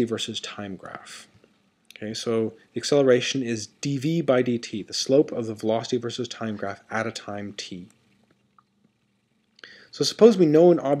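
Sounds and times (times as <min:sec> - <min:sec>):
man speaking: 0:00.0 - 0:01.3, 0:01.9 - 0:07.9, 0:09.9 - 0:11.0
faint low hum: 0:00.0 - 0:11.0.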